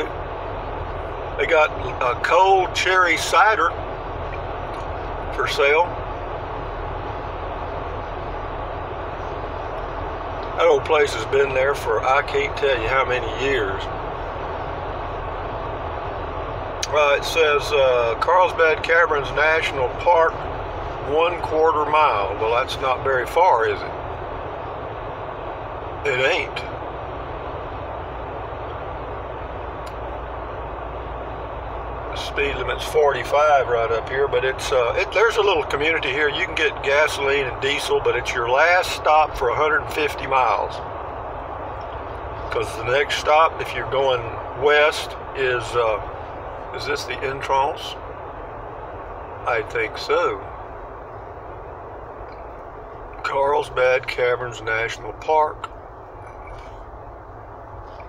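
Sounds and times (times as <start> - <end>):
road and engine noise in truck cab: 0.0 - 58.0.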